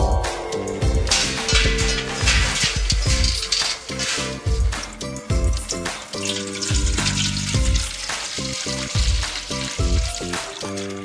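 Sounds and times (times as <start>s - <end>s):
background music with beat: 0.0s - 11.0s
hose pouring into metal tub: 1.0s - 11.0s.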